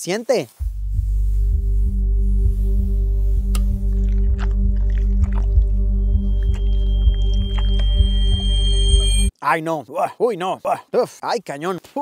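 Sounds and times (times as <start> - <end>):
deep drone with low pulses: 0.6 - 9.3
thin high held tone: 5.8 - 9.3.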